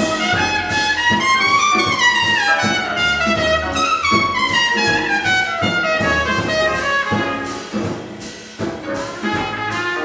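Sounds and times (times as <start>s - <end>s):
trumpet playing jazz phrase: 0.0s - 10.0s.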